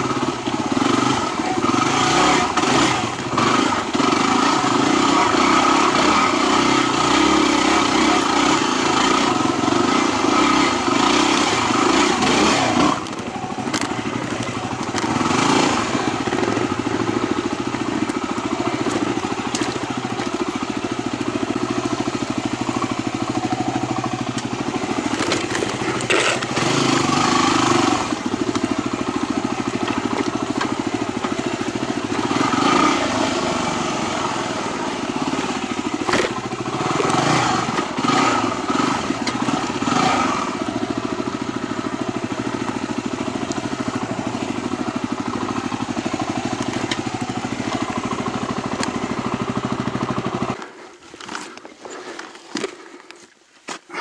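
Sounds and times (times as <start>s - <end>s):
motorcycle engine revving: 0.0s - 52.8s.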